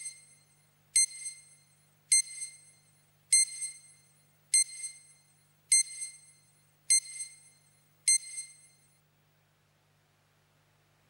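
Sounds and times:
heart monitor beeping: 0:00.0 - 0:00.4, 0:01.0 - 0:08.9.

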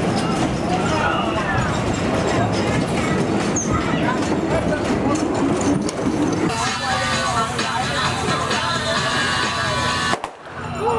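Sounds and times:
bumper cars rumbling and clattering: 0:00.0 - 0:10.9.

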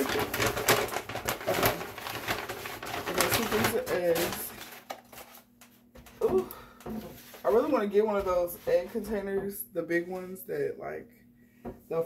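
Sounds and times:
paper bag crinkling: 0:00.0 - 0:06.3.

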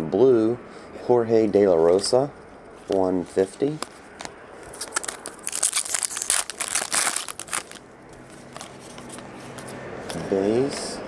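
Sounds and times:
foil wrapper crinkling: 0:02.9 - 0:09.6.

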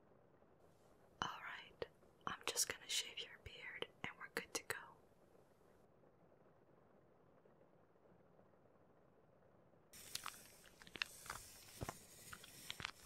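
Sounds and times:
person whispering: 0:01.2 - 0:05.0.

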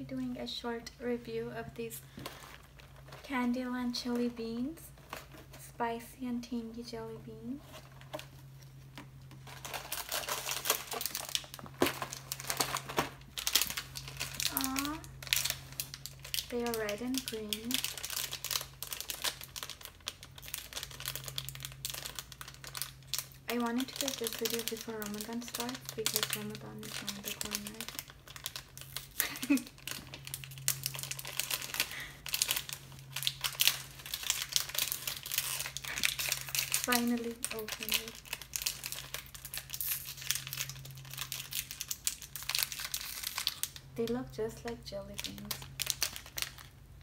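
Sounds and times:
plastic packet crinkling: 0:01.6 - 0:05.6, 0:07.3 - 0:47.0.

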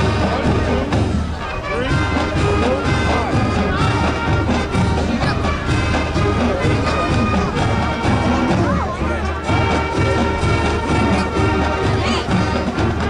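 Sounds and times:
brass instruments: 0:00.0 - 0:13.0
drum hits: 0:00.0 - 0:13.0.

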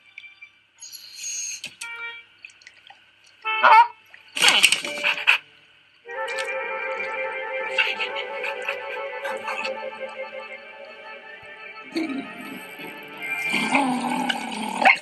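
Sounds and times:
music with sustained chords: 0:06.0 - 0:15.0
wavering pitched cry: 0:06.3 - 0:15.0.

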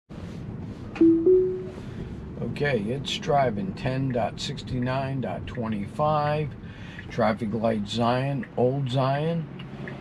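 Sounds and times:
road noise inside car: 0:00.1 - 0:10.0
two-note rising chime: 0:01.0 - 0:01.8.

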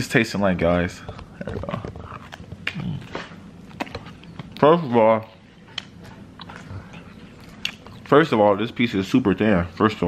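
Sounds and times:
person chewing pizza: 0:01.1 - 0:08.2.

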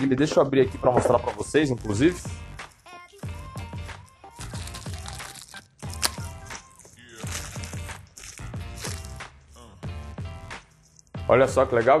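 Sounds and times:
background music with steady beat: 0:00.0 - 0:12.0
plastic foil pulled out: 0:01.8 - 0:09.2
plastic bag crinkling: 0:02.6 - 0:09.6.

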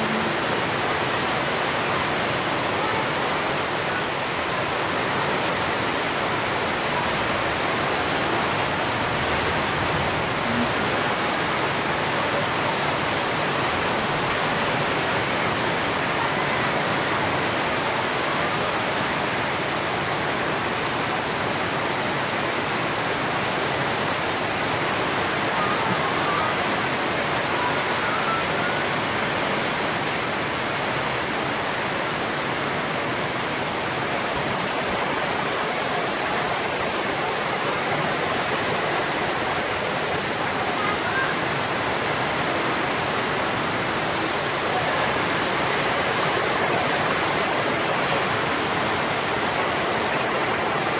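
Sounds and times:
heavy rain on trees and roof: 0:00.0 - 0:50.9.

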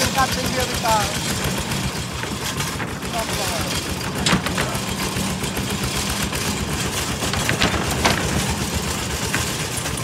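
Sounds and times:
diesel tractor engine running: 0:00.0 - 0:10.0
trailer knocking and rattling: 0:00.0 - 0:10.0.

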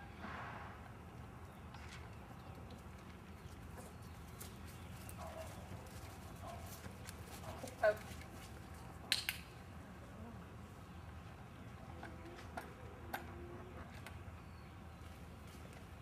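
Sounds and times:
hoof and boot steps on dirt: 0:01.5 - 0:09.0.

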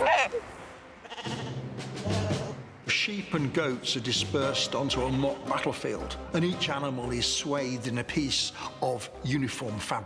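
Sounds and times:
sheep bleating: 0:00.0 - 0:00.4, 0:01.0 - 0:02.6.

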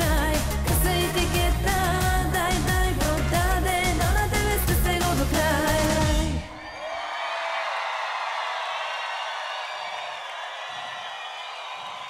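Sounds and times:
live pop-folk song: 0:00.0 - 0:06.4
crowd cheering and whooping: 0:06.5 - 0:12.0.

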